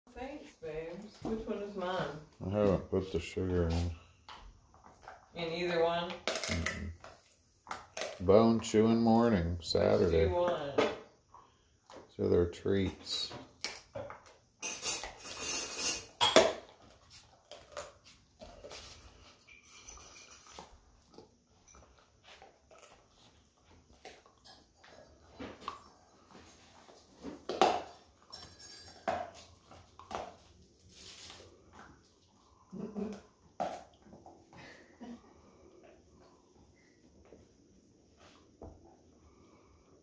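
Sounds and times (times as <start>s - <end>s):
dogs gnawing chew sticks: 16.6s - 19.4s, 20.3s - 28.3s, 29.0s - 34.6s.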